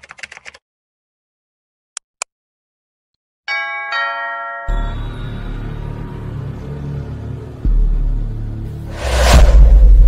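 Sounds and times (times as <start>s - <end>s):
two-note ding-dong chime: 3.5s - 5.1s
deep rumbling music intro: 4.8s - 10.0s.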